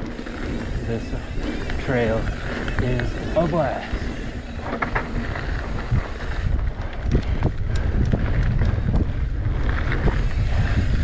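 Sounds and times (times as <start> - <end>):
tyres rolling over dirt: 0.0 - 6.5
bike knocks and rattles: 0.0 - 11.0
wind buffeting microphone: 0.0 - 11.0.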